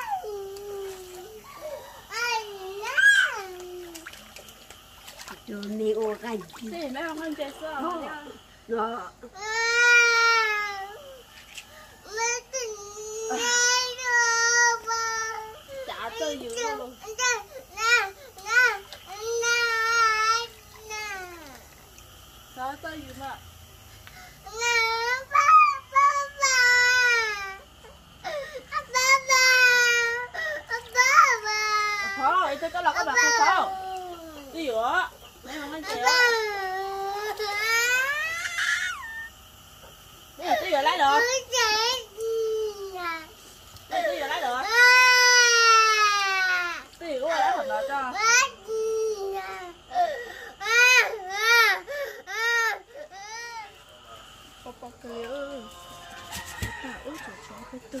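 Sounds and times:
young child crying: 0.0s - 4.0s.

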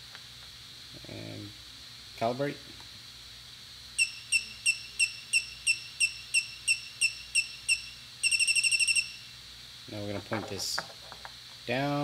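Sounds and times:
rapid beeps: 4.0s - 9.3s
short high electronic beeps: 4.0s - 9.3s.

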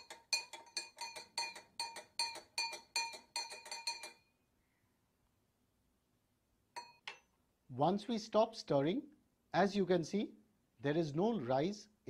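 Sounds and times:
spoon clinking in glass: 0.0s - 4.3s, 6.8s - 7.2s.

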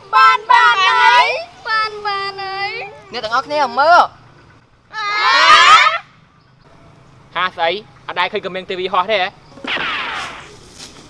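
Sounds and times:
people screaming in fright: 4.9s - 6.1s.

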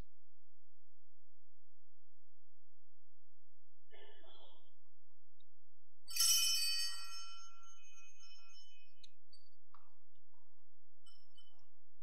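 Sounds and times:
altar bells ringing: 6.1s - 9.0s.

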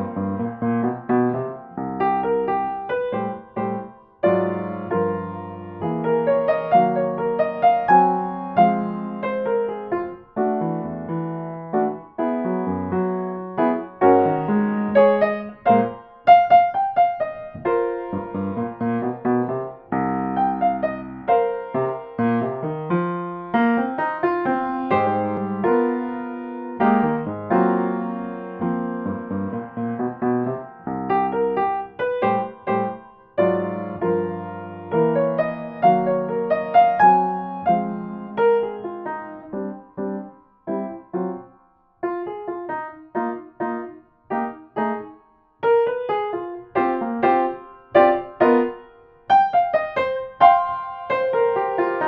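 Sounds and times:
jazzy solo piano: 0.0s - 52.0s.

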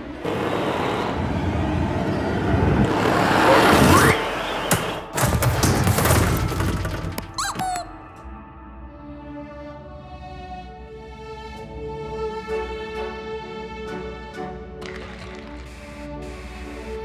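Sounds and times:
orchestral music: 7.4s - 17.0s.

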